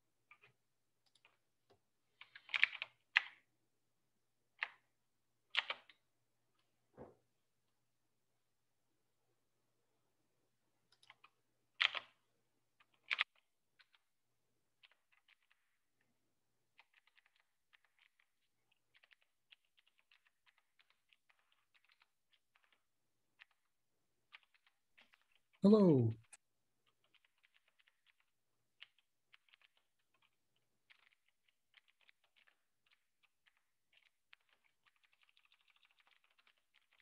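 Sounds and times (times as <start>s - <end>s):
faint typing on a keyboard: 0.0s - 3.5s, 4.5s - 7.2s, 10.5s - 37.0s.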